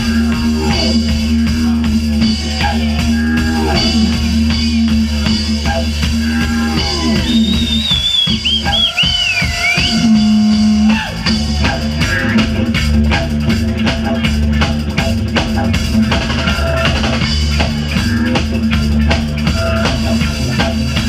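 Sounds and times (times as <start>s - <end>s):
bass: 0.0s - 21.0s
didgeridoo drone: 0.0s - 21.0s
drum kit steady beat: 0.0s - 21.0s.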